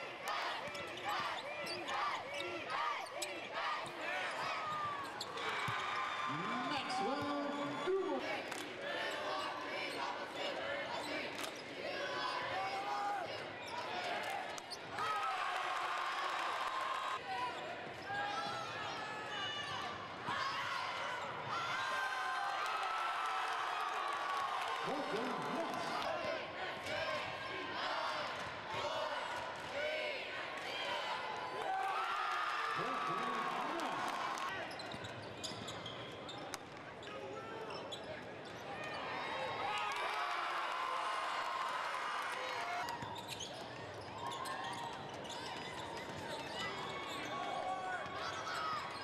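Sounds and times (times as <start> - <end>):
crowd chatter and calls: 0.0 - 49.0
shoes squeaking on court: 34.6 - 38.7, 43.0 - 47.4.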